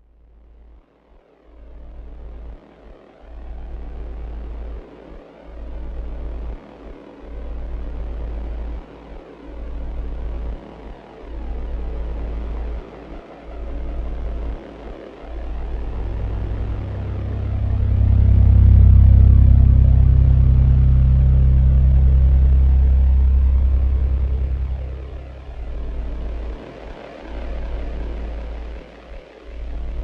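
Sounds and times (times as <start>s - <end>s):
low synth drone: 15.2s - 28.9s
deep electronic bass: 15.3s - 26.7s, 27.4s - 28.8s.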